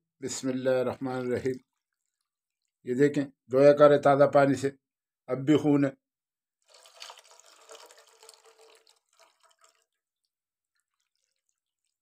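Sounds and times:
faint water drips: 0.4s - 2.9s, 6.7s - 12.0s
water pouring into pan: 6.7s - 12.0s.

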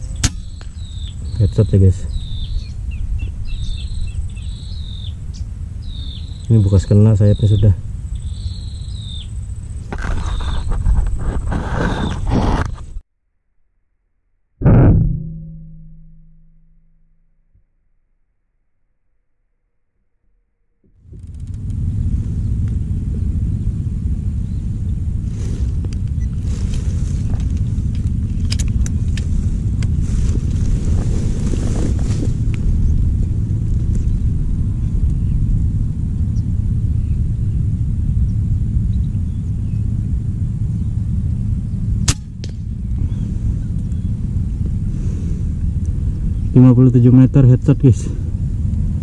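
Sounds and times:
wind buffeting microphone: 0.0s - 13.0s, 21.1s - 49.0s.

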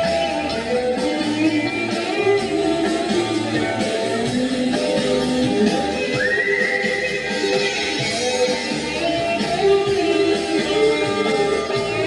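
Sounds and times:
live band with guitars and drums: 0.0s - 12.0s.

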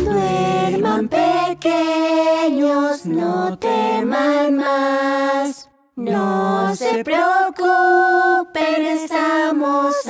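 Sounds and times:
soft music: 0.0s - 2.4s.

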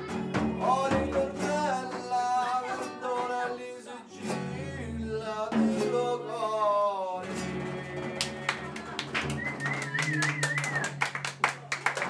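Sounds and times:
frame drum tapped by hand: 0.0s - 2.3s
acoustic guitar: 0.0s - 11.8s.

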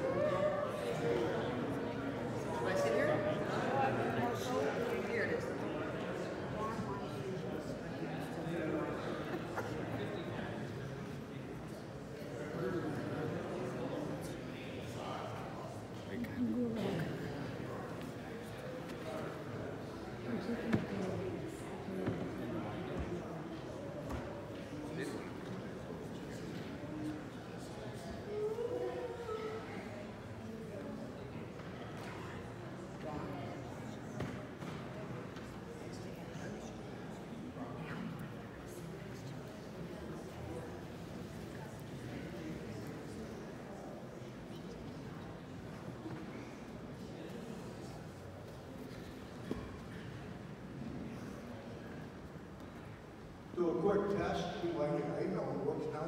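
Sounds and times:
murmur of people talking: 0.0s - 56.0s.

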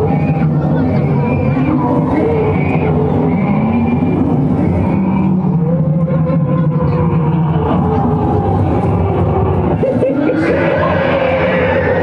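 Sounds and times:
crowd voices: 0.0s - 12.0s
wavering shouts: 9.9s - 12.0s.

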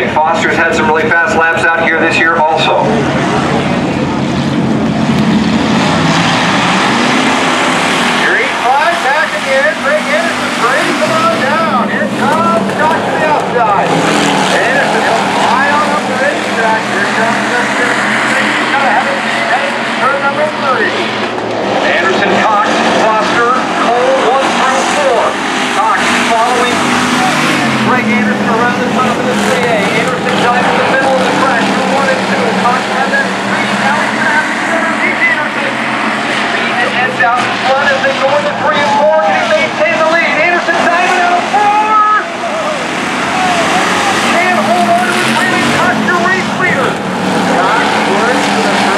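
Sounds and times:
race car engines: 0.0s - 48.9s
spectators chatting: 0.0s - 48.9s.

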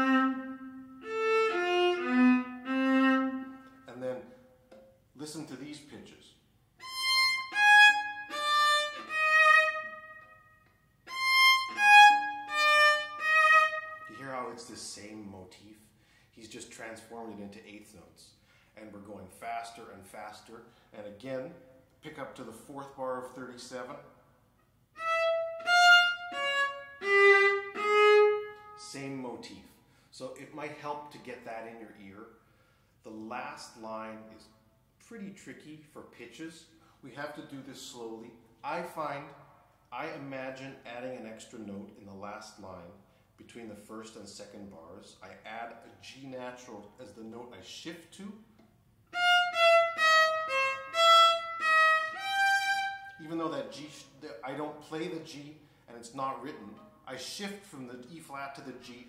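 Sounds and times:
solo viola bowed notes: 0.0s - 3.9s, 6.8s - 14.5s, 25.0s - 28.8s, 49.1s - 53.2s.

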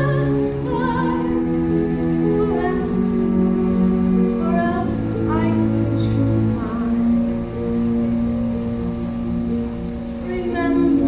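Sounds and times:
low recording rumble: 0.0s - 11.0s.

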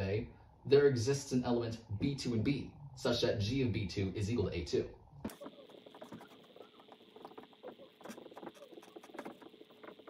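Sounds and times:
marker squeaking on whiteboard: 5.3s - 10.0s.

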